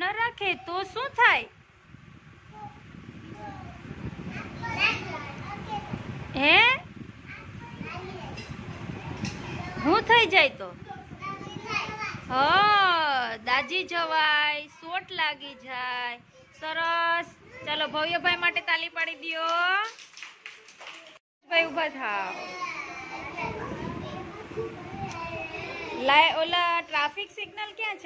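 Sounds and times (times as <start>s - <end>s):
murmur of children's voices: 2.5s - 6.4s, 7.0s - 19.4s, 21.0s - 28.0s
children chattering: 22.0s - 28.0s.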